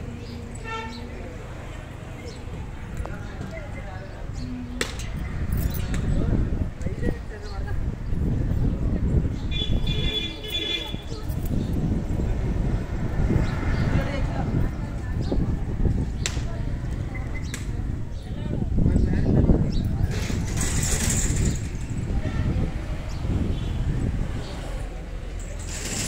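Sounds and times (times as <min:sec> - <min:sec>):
faint voices: 0:00.0 - 0:26.0.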